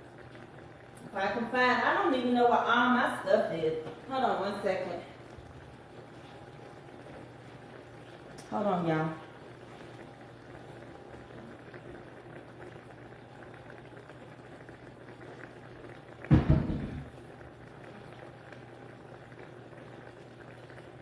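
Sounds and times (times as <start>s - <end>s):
faint steady hum: 0.0s - 21.0s
food cooking on stovetop: 0.0s - 21.0s
loud thump and clatter: 16.3s - 17.1s.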